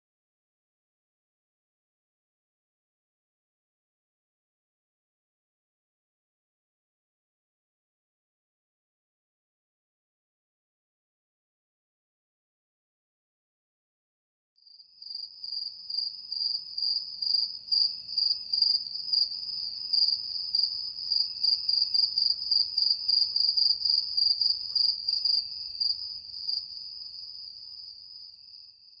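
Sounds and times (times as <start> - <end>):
crickets chirping: 14.7 - 29.0.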